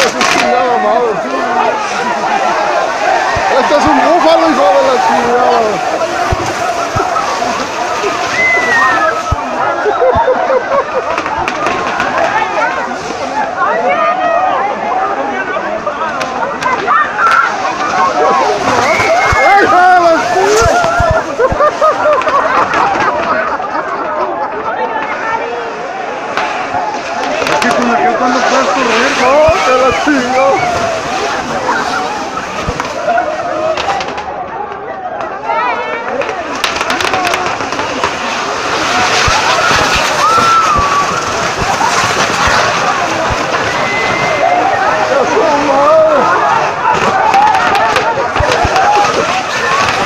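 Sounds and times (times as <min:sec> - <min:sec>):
sharp firecracker cracks: 0:00.0 - 0:00.5, 0:36.2 - 0:43.6, 0:46.9 - 0:50.0
fireworks going off: 0:00.0 - 0:14.0, 0:16.1 - 0:24.1, 0:25.0 - 0:34.6, 0:35.2 - 0:50.0
crowd shouting and yelling: 0:00.0 - 0:50.0.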